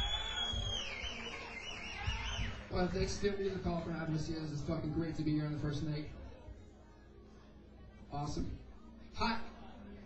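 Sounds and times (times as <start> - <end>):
loud high warbling whistle: 0.0 - 2.6.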